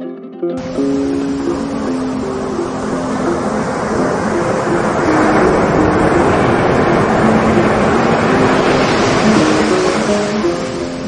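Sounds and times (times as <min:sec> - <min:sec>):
faint guitar music: 0:00.0 - 0:11.0
surf washing over sand: 0:00.6 - 0:11.0.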